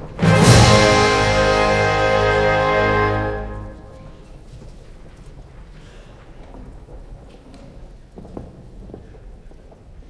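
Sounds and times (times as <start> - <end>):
faint footfalls on stage floor: 3.9 - 10.0.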